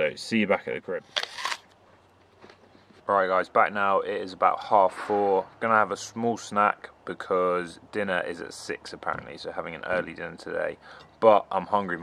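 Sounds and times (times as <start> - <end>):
camera handling noise: 1.1 - 1.8.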